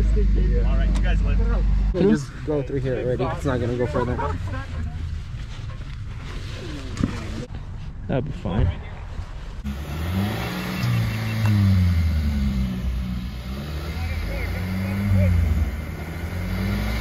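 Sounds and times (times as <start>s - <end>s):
vehicle engine revving: 9.6s - 17.0s.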